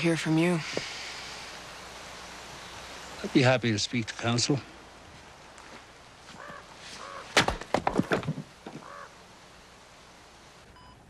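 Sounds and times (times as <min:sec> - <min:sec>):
bird cawing: 0:06.3 - 0:07.5, 0:08.7 - 0:09.3.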